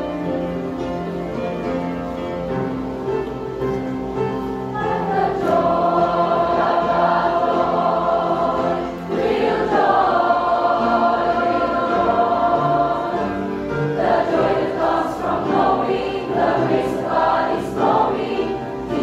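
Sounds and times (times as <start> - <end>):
instrumental accompaniment: 0.0 - 19.0
choir singing gospel song: 4.7 - 19.0.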